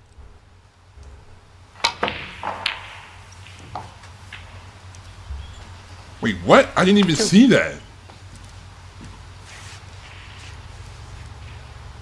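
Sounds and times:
snooker balls clicking: 0:01.8 - 0:05.8.

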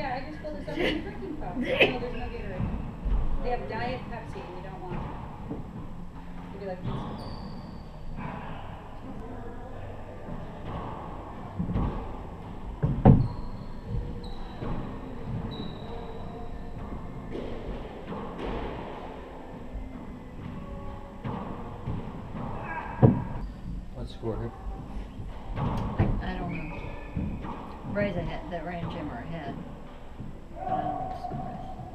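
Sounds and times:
sneakers squeaking on hardwood: 0:06.6 - 0:08.3, 0:10.5 - 0:19.2, 0:19.9 - 0:23.9, 0:24.8 - 0:31.9
handball smacking echoing: 0:10.4 - 0:23.8, 0:24.8 - 0:28.0.

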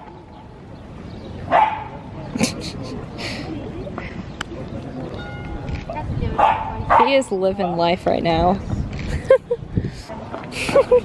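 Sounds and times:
small dog barking: 0:01.5 - 0:01.9, 0:06.4 - 0:07.2.

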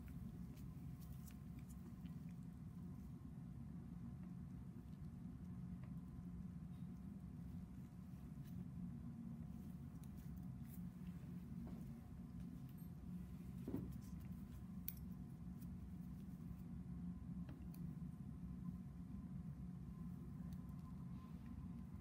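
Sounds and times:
faint room hum: 0:00.0 - 0:22.0.

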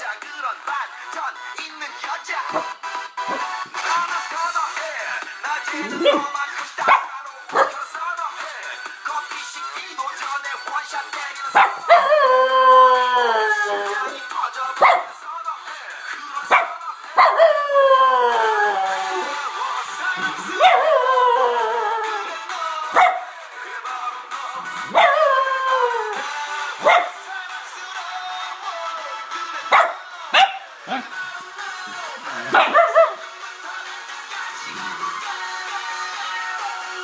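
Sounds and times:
music: 0:00.0 - 0:37.0
dog barking: 0:06.0 - 0:07.8, 0:11.6 - 0:12.0, 0:14.8 - 0:15.1, 0:16.5 - 0:17.4, 0:20.6 - 0:20.8, 0:22.9 - 0:23.3, 0:24.9 - 0:25.2, 0:26.8 - 0:27.2, 0:29.7 - 0:31.1, 0:32.5 - 0:33.2
dog howling: 0:11.6 - 0:14.2, 0:17.2 - 0:19.6, 0:20.2 - 0:22.4, 0:24.9 - 0:26.3.

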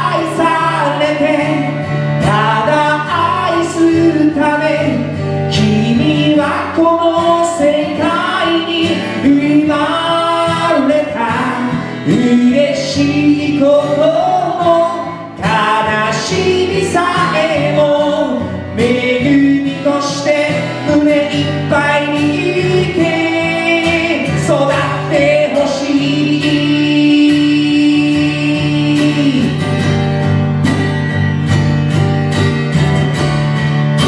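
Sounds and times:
man singing: 0:00.0 - 0:29.9
acoustic guitar: 0:00.0 - 0:34.0
woman singing: 0:12.1 - 0:29.6.

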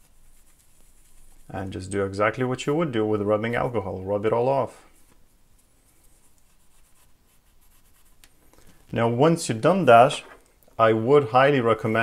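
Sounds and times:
cotton pad rubbing on metal: 0:00.0 - 0:02.0.

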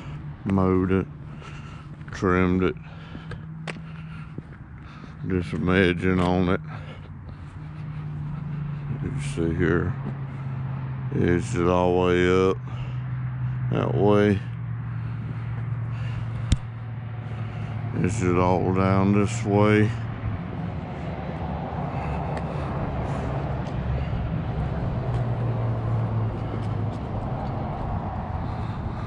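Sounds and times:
footsteps on pavement: 0:00.0 - 0:13.6, 0:14.6 - 0:29.0
low engine hum: 0:00.0 - 0:29.0.

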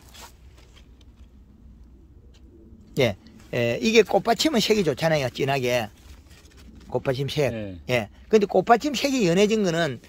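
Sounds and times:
faint rustling and brushing: 0:00.0 - 0:01.5, 0:03.2 - 0:07.5
low steady rumble: 0:00.0 - 0:10.0.

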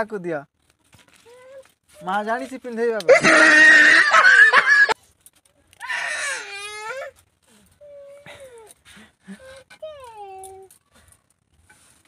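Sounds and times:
toddler whining and crying: 0:01.2 - 0:02.1, 0:05.8 - 0:08.8.

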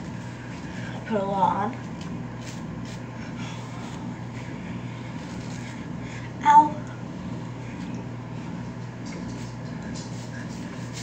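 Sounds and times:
steady low hum: 0:00.0 - 0:11.0
hairbrush strokes through hair: 0:02.4 - 0:03.1, 0:09.4 - 0:11.0.

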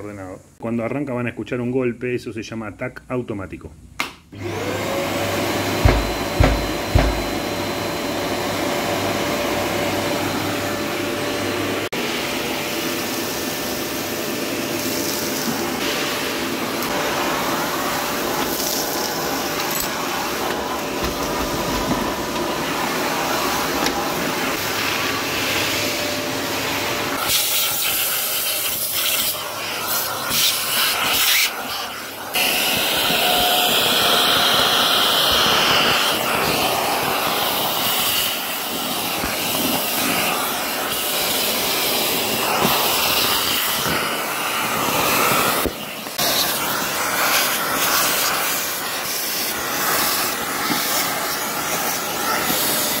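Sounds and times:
vacuum filter cleaning knock: 0:05.5 - 0:07.8, 0:20.4 - 0:22.8, 0:23.4 - 0:24.3.

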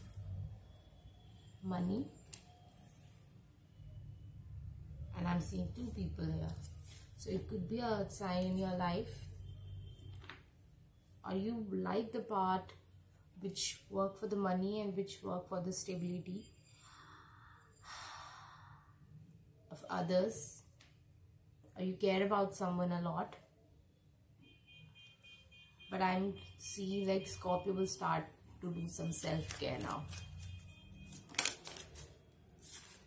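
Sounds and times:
soft breath: 0:16.6 - 0:19.2
cards rustling: 0:29.0 - 0:33.0
cards snapping: 0:31.1 - 0:32.1.

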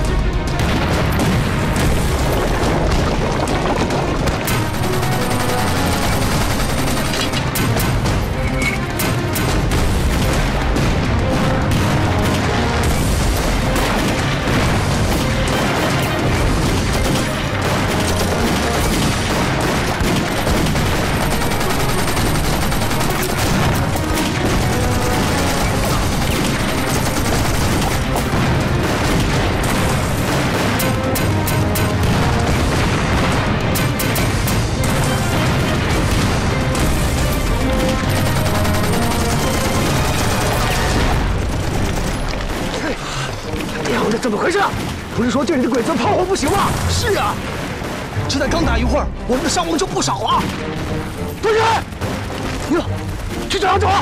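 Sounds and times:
crackling gunfire: 0:00.0 - 0:48.8, 0:49.4 - 0:53.8
shell explosions: 0:00.0 - 0:53.6
film score music: 0:00.0 - 0:54.0.

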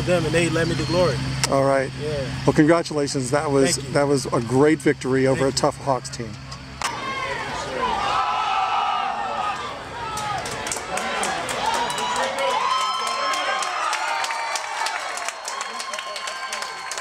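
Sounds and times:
crowd cheering and yelling: 0:06.8 - 0:17.0.

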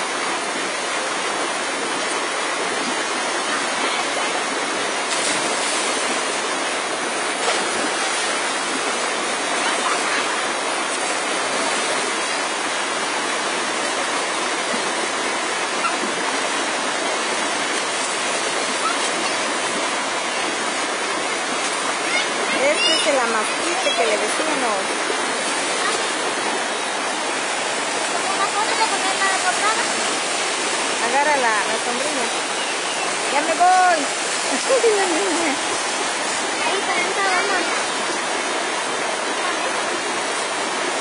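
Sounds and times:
river water rushing over rocks: 0:00.0 - 0:41.0.

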